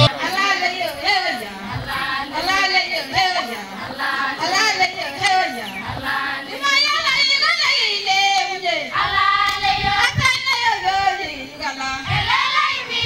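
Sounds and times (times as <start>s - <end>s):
children singing together: 0.0s - 13.0s.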